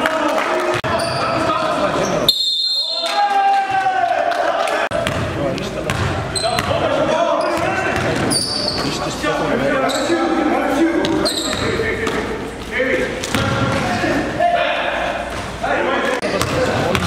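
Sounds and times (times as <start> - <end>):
players' voices echoing: 0.0 - 17.0
basketball bouncing on gym floor: 4.9 - 6.8
sneakers squeaking on court: 5.0 - 9.0, 9.8 - 10.2, 11.0 - 12.6.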